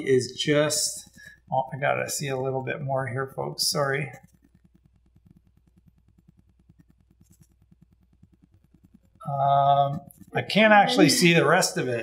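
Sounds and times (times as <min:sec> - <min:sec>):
faint low pulsing: 0:00.0 - 0:12.0
low hum: 0:00.0 - 0:12.0.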